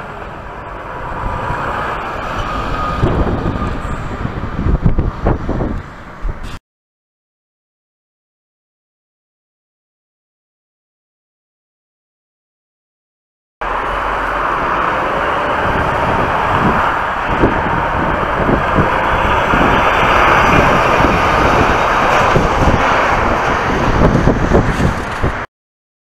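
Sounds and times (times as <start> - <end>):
lorry engine and road noise: 0.0 - 6.6, 13.6 - 25.5.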